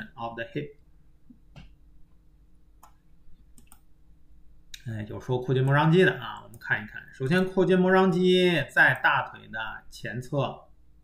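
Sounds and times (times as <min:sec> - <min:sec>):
low room hum: 0:00.0 - 0:11.0
computer mouse clicks: 0:02.8 - 0:03.9.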